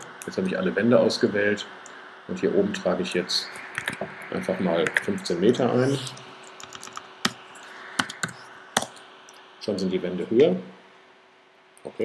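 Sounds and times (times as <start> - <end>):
computer keyboard typing: 6.5 - 7.4, 8.0 - 9.0.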